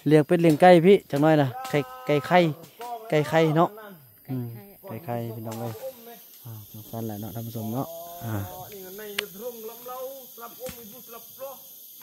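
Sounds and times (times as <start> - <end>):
person talking: 1.2 - 10.8.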